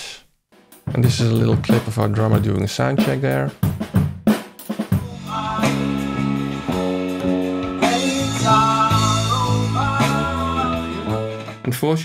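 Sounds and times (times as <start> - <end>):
drum hits: 0.6 - 11.5
held pitched notes: 5.0 - 11.7.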